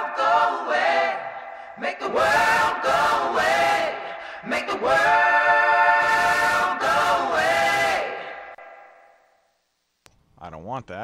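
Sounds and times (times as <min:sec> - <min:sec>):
saturated harmony vocal note: 0:00.0 - 0:09.2.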